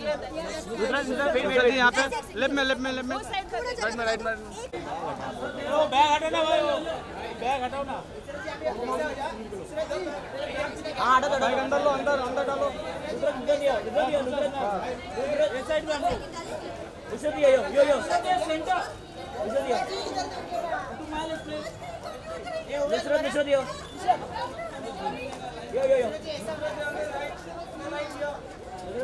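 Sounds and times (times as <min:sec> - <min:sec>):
overlapping chatter of people: 0:00.0 - 0:29.0
people talking over one another: 0:00.0 - 0:29.0.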